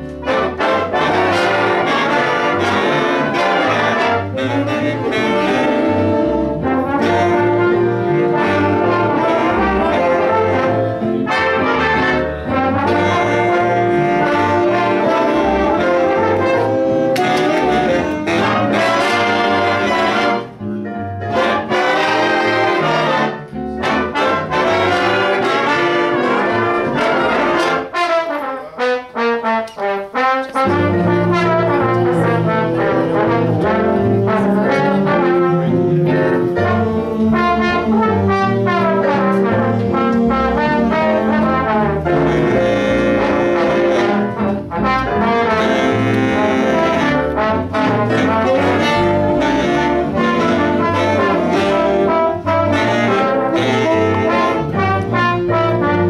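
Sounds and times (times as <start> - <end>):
big band playing: 0.0 - 56.0.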